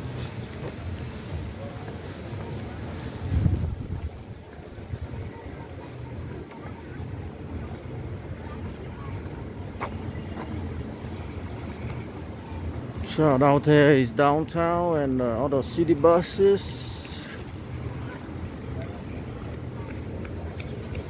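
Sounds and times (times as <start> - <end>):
wind buffeting microphone: 0.0 - 8.2.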